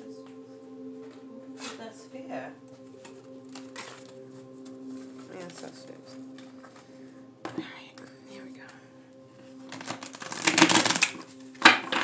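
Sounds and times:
cards being shuffled: 0:03.0 - 0:06.9, 0:09.6 - 0:12.0.

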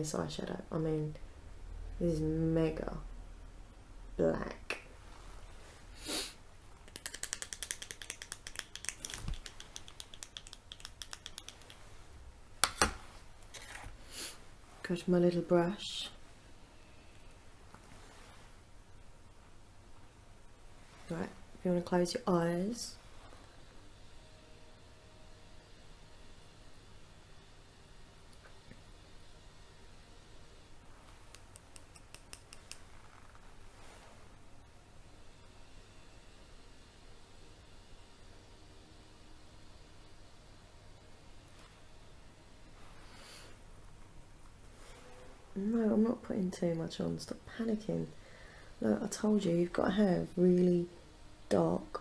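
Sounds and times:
soft rustle: 0:05.0 - 0:05.9, 0:17.6 - 0:18.7, 0:32.7 - 0:34.4, 0:42.7 - 0:45.5
crisp clicks: 0:06.8 - 0:11.9, 0:31.3 - 0:32.9
soft brushing swish: 0:33.6 - 0:34.4.

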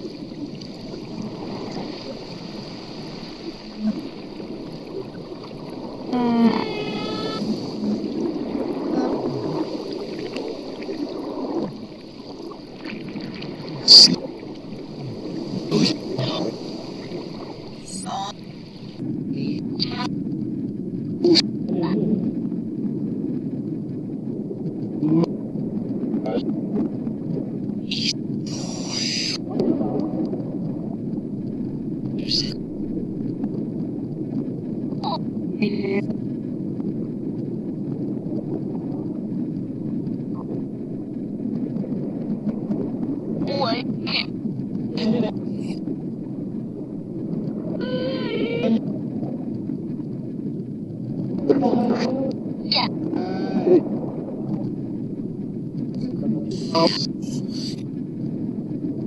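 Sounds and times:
reversed garbled speech: 0:17.9 - 0:18.4, 0:32.2 - 0:32.6, 0:43.5 - 0:44.3, 0:56.5 - 0:57.8.

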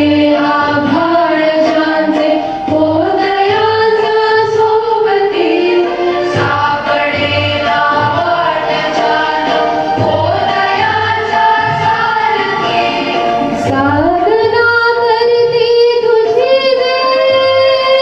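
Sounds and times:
instrumental accompaniment: 0:00.0 - 0:18.0.

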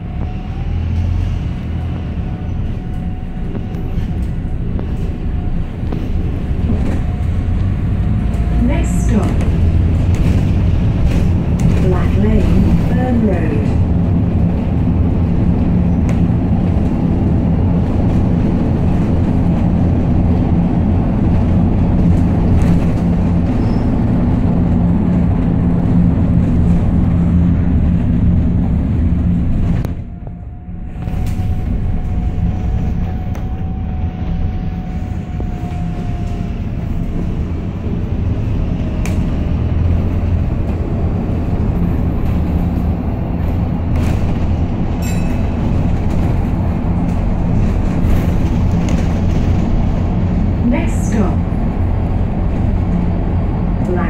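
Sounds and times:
bus engine droning: 0:00.0 - 0:54.0.

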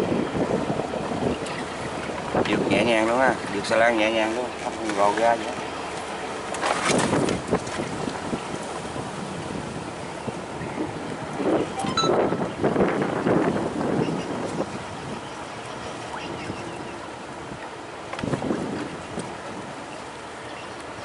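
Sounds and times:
wind buffeting microphone: 0:00.0 - 0:20.0
choppy river water rushing: 0:00.0 - 0:21.0.

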